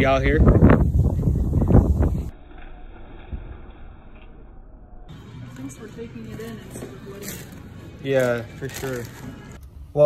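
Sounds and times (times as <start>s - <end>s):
wind buffeting microphone: 0.0s - 2.4s.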